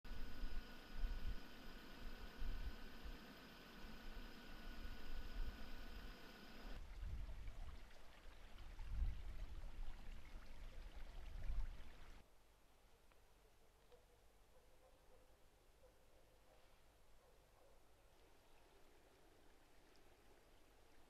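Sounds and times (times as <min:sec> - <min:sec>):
creek running over rocks: 0:06.8 - 0:12.2.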